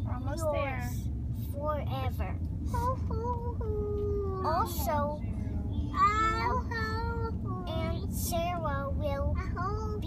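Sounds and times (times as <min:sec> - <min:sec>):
road noise inside car: 0:00.0 - 0:10.0
child's sing-song voice: 0:01.5 - 0:05.3, 0:05.9 - 0:10.0.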